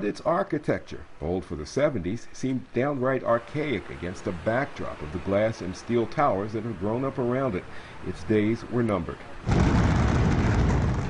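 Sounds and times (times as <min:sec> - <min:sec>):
building implosion boom and rumble: 0:09.5 - 0:11.0.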